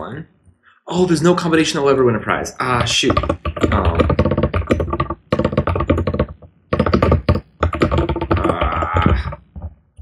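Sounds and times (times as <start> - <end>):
fast typing on keyboard: 2.6 - 10.0.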